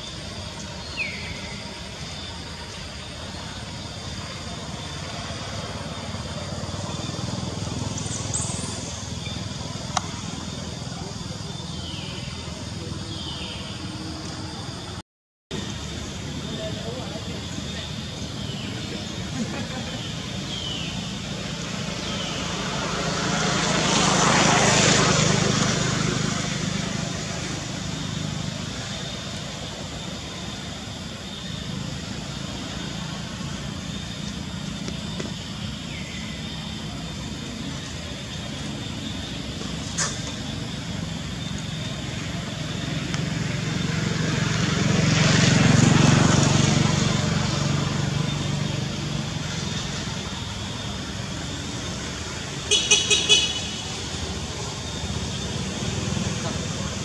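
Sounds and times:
vehicles passing on road: 0.0 - 57.0.

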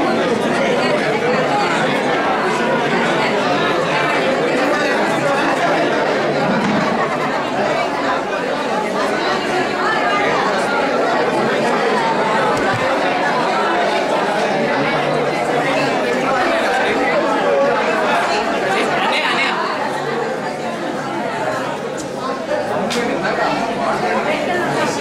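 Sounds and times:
overlapping chatter of voices: 0.0 - 25.0.

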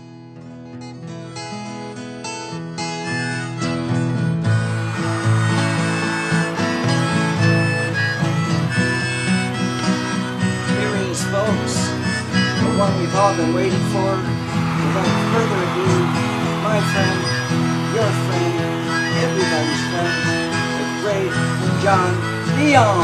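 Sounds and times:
acoustic guitar strumming: 0.0 - 23.0
harmonica: 0.8 - 23.0.

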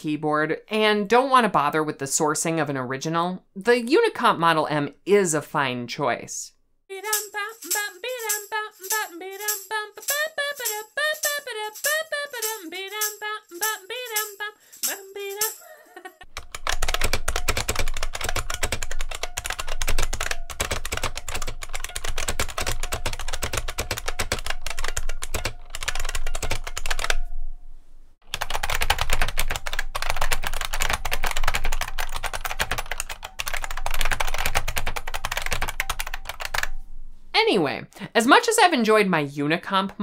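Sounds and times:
fast typing on clicky keyboard: 16.3 - 27.2, 28.3 - 36.7.

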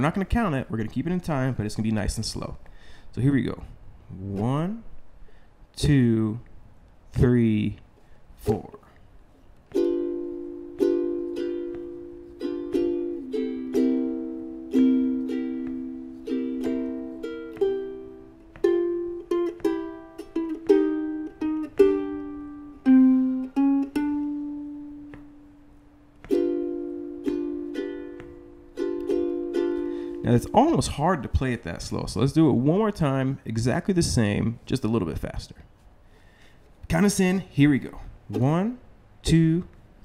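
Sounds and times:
ukulele strumming blues: 9.6 - 32.0, 37.8 - 39.8.

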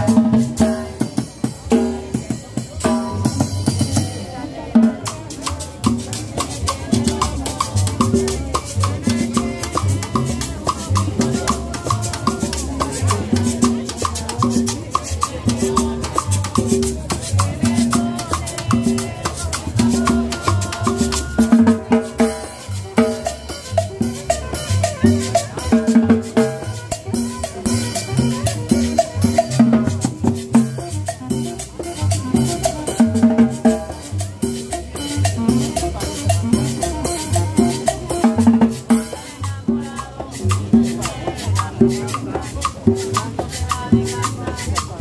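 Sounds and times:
drums and cymbals beat: 0.0 - 45.0
live band playing latin dance music: 0.0 - 45.0.

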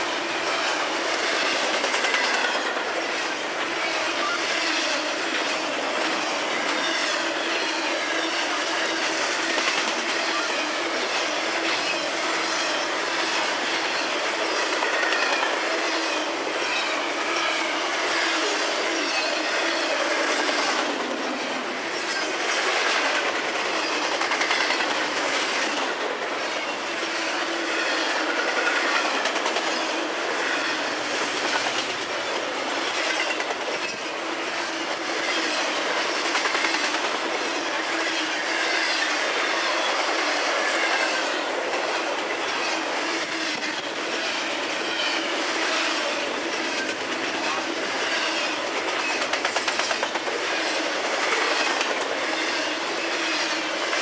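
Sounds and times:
freight train wheels on rail: 0.0 - 54.0.

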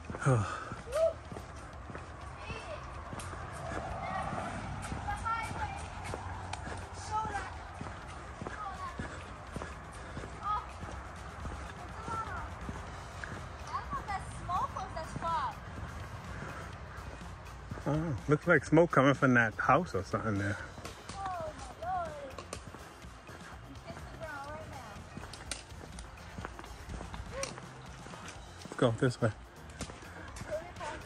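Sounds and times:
footsteps on paved path: 0.0 - 31.0.

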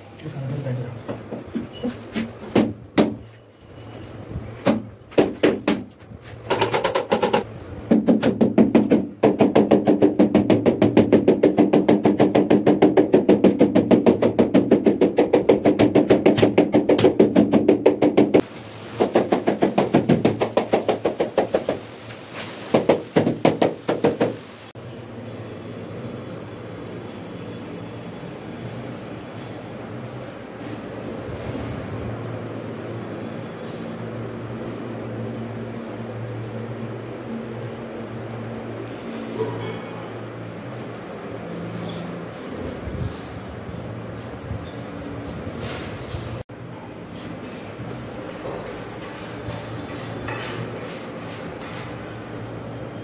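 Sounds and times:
knocks on wall tile: 4.6 - 18.4, 19.0 - 21.9, 22.7 - 24.4.

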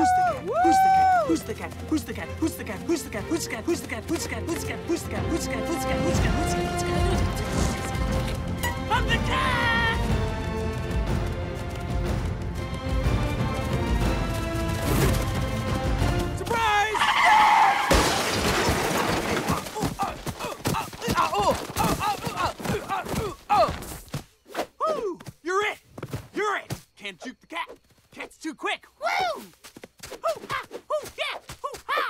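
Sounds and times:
cartoon scream: 0.0 - 1.2, 16.8 - 18.0
film score music: 0.0 - 17.5
crash: 17.8 - 19.8.

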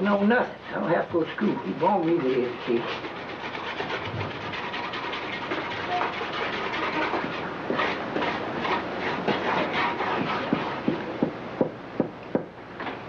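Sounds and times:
brush scrubbing paint on board: 0.0 - 11.4.

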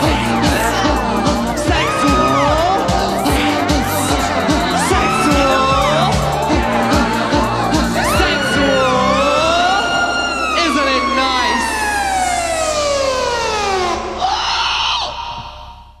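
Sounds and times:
drum machine beat: 0.0 - 9.6
descending synthesizer tone: 0.0 - 16.0.

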